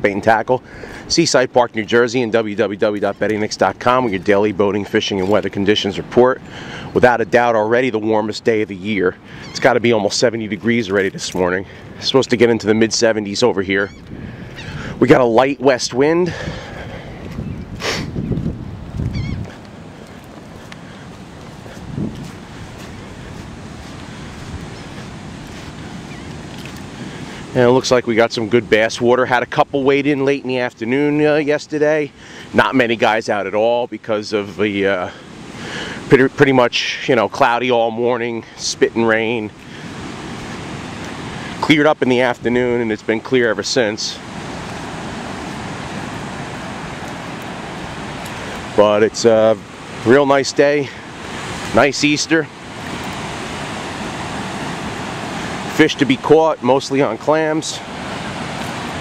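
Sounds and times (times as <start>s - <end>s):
light wind: 0.0s - 59.0s
ocean surf: 0.0s - 59.0s
wavering bird call: 9.3s - 9.7s, 13.8s - 14.9s, 19.1s - 19.6s.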